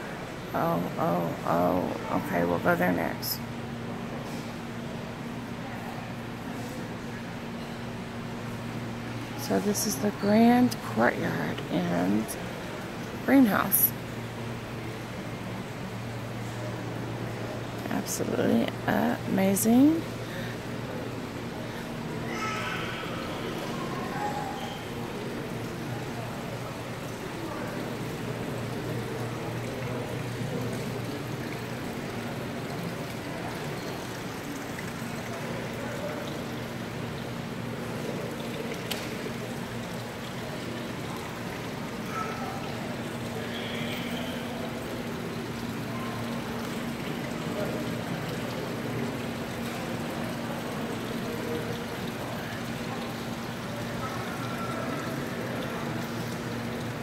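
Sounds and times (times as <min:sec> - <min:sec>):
fountain water trickling: 0:00.0 - 0:57.0
low steady hum: 0:00.0 - 0:57.0.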